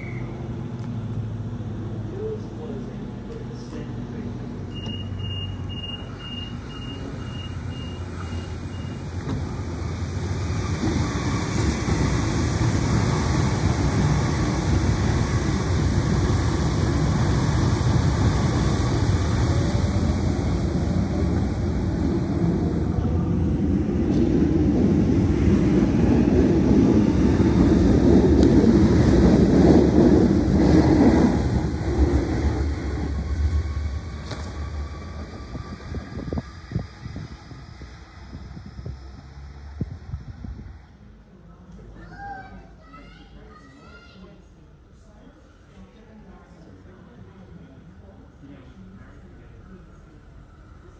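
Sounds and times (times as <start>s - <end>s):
electric train passing: 0.0s - 41.4s
short quick beeps: 4.7s - 9.0s
train motor whine: 32.6s - 40.6s.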